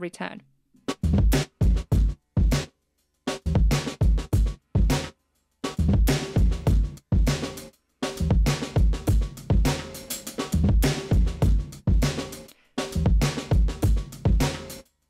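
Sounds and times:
gated drum loop: 0:00.9 - 0:15.0.

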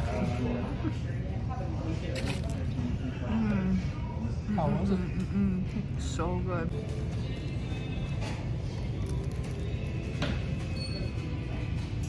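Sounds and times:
voices in busy restaurant: 0:00.0 - 0:12.0.

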